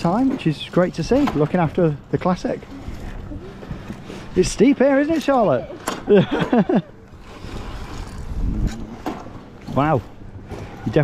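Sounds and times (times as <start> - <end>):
person laughing: 6.0 - 7.0
wind rumble on microphone: 7.1 - 10.5.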